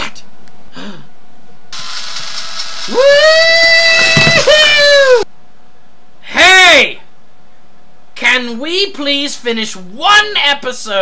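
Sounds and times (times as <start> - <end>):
steady hiss: 1.7 - 3.6
high-pitched scream: 2.8 - 5.3.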